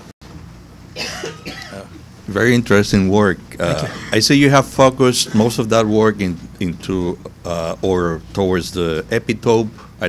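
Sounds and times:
low room hum: 0:00.2 - 0:10.0
person coughing: 0:01.0 - 0:02.0, 0:03.6 - 0:04.2, 0:05.2 - 0:05.6
throat and voice sounds: 0:03.5 - 0:04.3.

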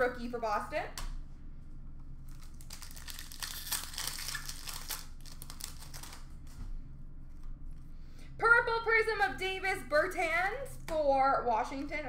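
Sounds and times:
trading cards being shuffled: 0:02.2 - 0:06.7.

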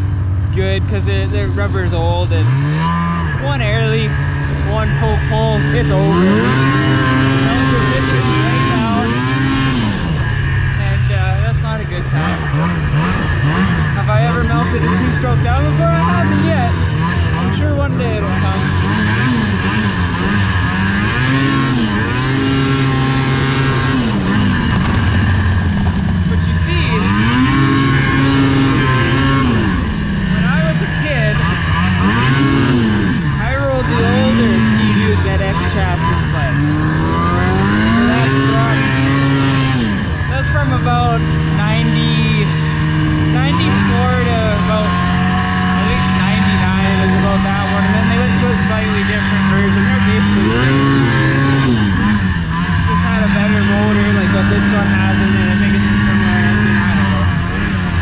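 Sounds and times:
snowmobile engine revving: 0:00.0 - 0:58.0.

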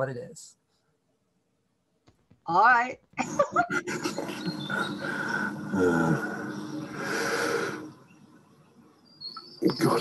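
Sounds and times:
documentary soundtrack from computer: 0:02.1 - 0:10.0.

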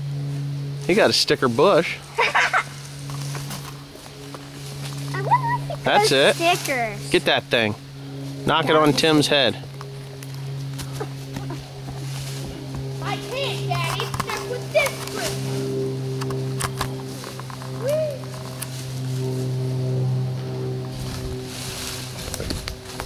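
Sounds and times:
voices: 0:04.0 - 0:15.7, 0:17.6 - 0:18.4.

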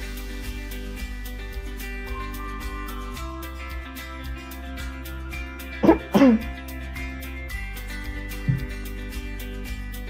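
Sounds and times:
background music with steady beat: 0:00.0 - 0:10.0
person coughing: 0:05.8 - 0:06.5.

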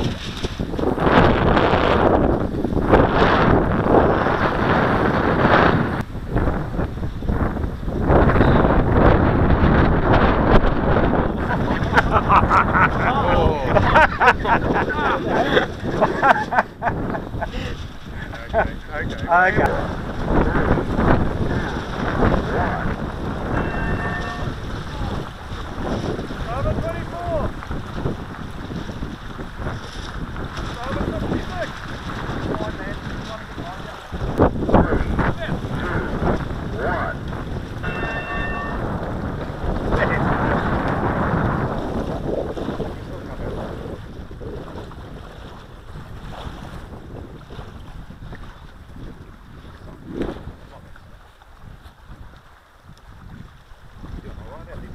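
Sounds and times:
gusty wind buffeting microphone: 0:00.0 - 0:54.9.

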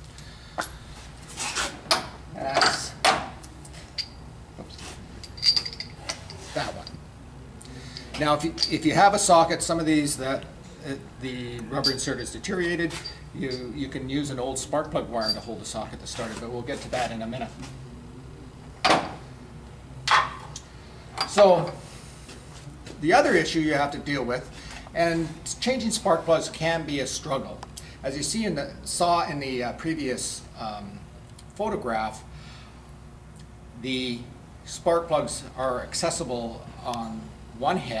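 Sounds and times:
metal sockets clinking: 0:05.2 - 0:07.0, 0:15.2 - 0:15.5.

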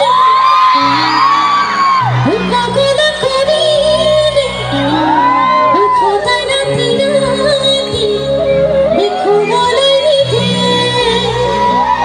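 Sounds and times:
woman singing: 0:00.0 - 0:01.2, 0:02.2 - 0:12.0
live band playing through pa: 0:00.0 - 0:12.0.

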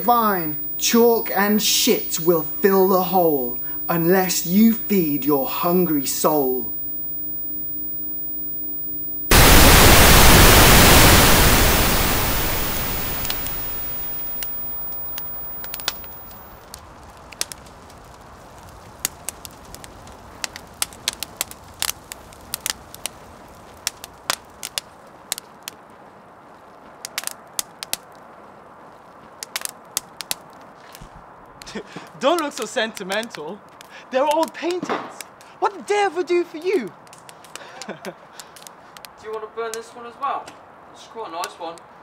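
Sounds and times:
steady hum: 0:00.0 - 0:16.6
static hiss burst: 0:00.0 - 0:16.7
wood fire crackling and popping: 0:09.3 - 0:35.6, 0:36.6 - 0:39.9.

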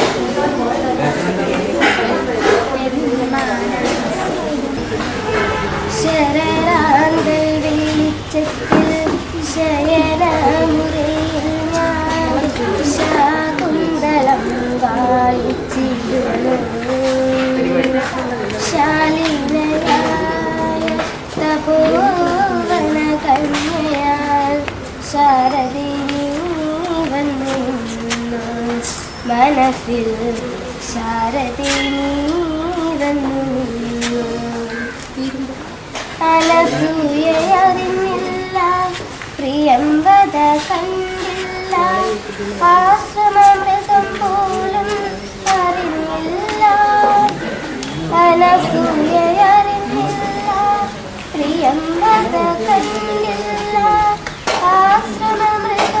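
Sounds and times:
girl singing: 0:00.0 - 0:01.2, 0:02.2 - 0:56.0.

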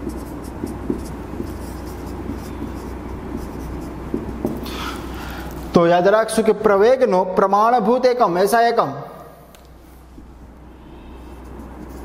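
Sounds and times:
marker writing on whiteboard: 0:00.0 - 0:05.7, 0:11.0 - 0:12.0
steady low hum: 0:00.0 - 0:12.0.

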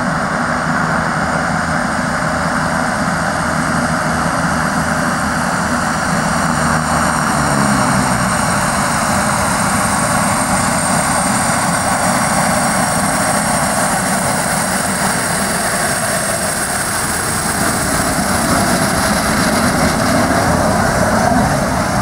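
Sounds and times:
high engine whine: 0:00.0 - 0:22.0
turboprop engines at take-off power: 0:00.0 - 0:22.0.

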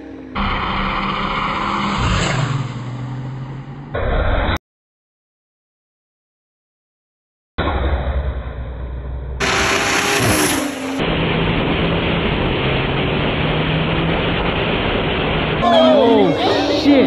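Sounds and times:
wind and road rush: 0:00.0 - 0:04.0, 0:09.4 - 0:17.0
car engine drone: 0:00.0 - 0:04.6, 0:07.6 - 0:17.0.

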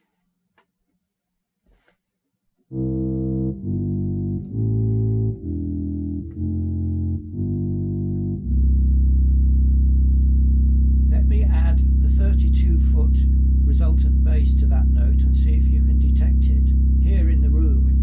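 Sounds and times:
organ bass pedal notes: 0:02.7 - 0:18.0.

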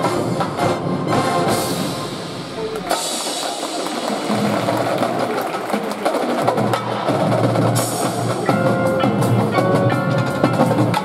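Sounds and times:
snare and bass drums playing: 0:01.2 - 0:11.0.

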